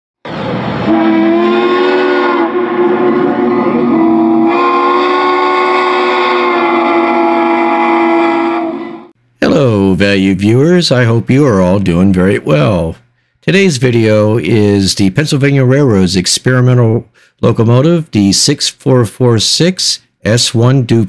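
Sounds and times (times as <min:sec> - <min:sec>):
steam locomotive chime whistle: 0:00.8 - 0:09.1.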